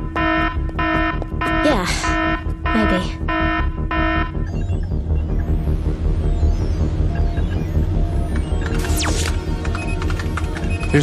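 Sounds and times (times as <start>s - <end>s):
electronic alarm beeping: 0.0s - 11.0s.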